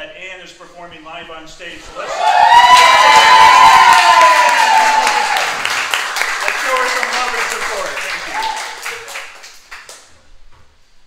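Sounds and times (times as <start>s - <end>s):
cheering and high whoop: 2.0s - 5.7s, 8.2s - 9.0s
audience clapping: 2.0s - 10.2s.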